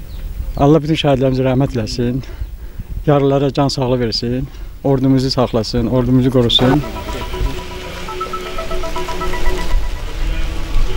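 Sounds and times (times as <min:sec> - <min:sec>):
slow melody of long notes: 0:06.6 - 0:10.9.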